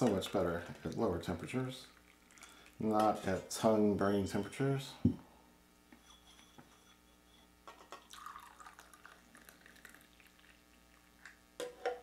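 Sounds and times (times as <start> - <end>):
liquid trickling into glass: 2.0 - 2.8, 7.9 - 11.4.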